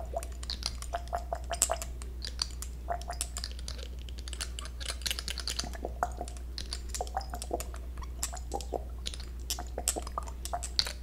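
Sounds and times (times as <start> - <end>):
soft clicks and crackles: 0.0 - 11.0
steady low hum: 0.0 - 11.0.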